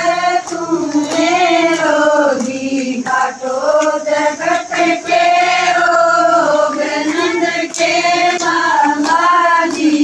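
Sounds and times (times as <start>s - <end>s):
women singing in unison: 0.0s - 10.0s.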